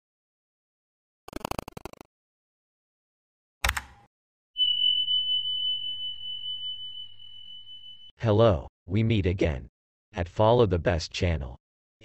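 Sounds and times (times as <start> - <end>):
high electronic beep tone: 4.6 - 8.1.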